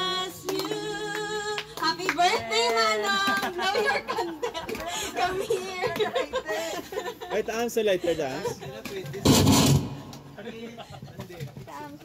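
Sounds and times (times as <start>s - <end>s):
people talking quietly: 10.2s - 12.0s.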